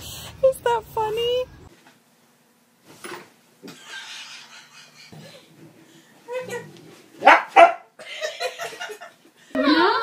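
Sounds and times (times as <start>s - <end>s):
dog barking: 7.2s - 7.9s.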